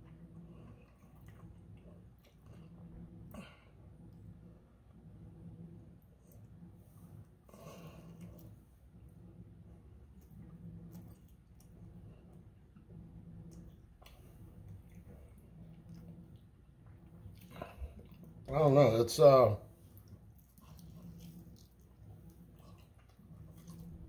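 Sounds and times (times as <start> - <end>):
soft wet chewing: 0.0 - 19.0, 19.6 - 24.0.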